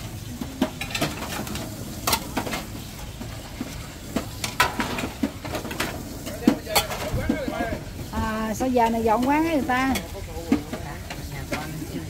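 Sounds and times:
food frying sizzle: 0.0 - 12.0.

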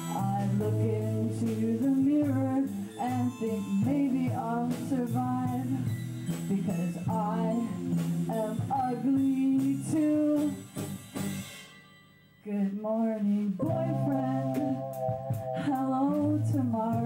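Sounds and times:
woman singing long notes: 0.0 - 5.9, 6.5 - 10.6, 12.4 - 17.0
live rock band playing: 0.0 - 11.7, 13.6 - 17.0
drum hits: 13.6 - 17.0.

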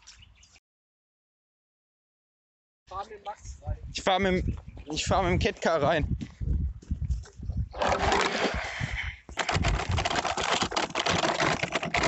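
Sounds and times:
pedal go-kart rattling and clicking: 7.8 - 8.5, 9.4 - 12.0.

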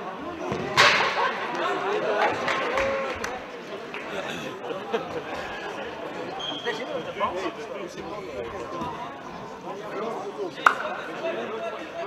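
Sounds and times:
men talking: 1.2 - 12.0.

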